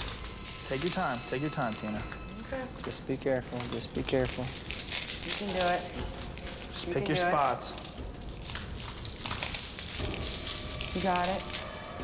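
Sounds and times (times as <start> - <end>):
broken glass crunching underfoot: 0.0 - 12.0.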